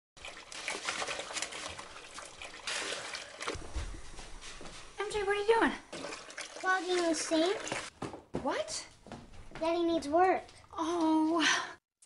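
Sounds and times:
water and mud splashing: 0.2 - 3.6, 5.9 - 7.9.

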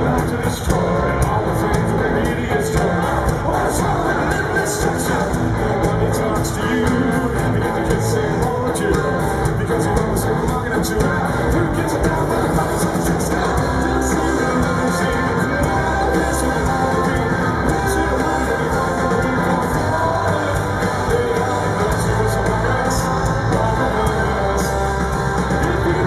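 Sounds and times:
drums: 0.0 - 26.0
electric guitars: 0.0 - 26.0.

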